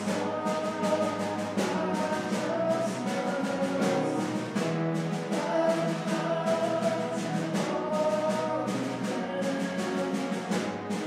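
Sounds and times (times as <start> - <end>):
instrumental accompaniment: 0.0 - 11.0
voices singing worship song: 0.0 - 11.0.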